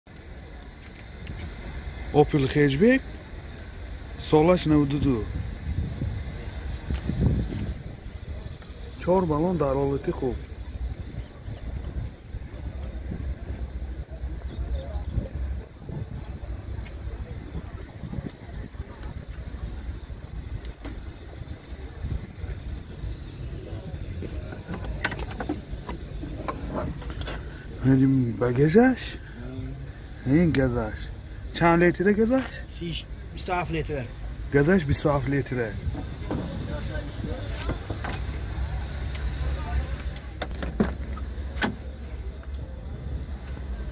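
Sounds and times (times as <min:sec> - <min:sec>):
steady low rumble: 0:00.1 - 0:43.9
faint ticks: 0:03.5 - 0:03.8
car tailgate clicks and knocks: 0:24.4 - 0:27.4, 0:40.4 - 0:41.9.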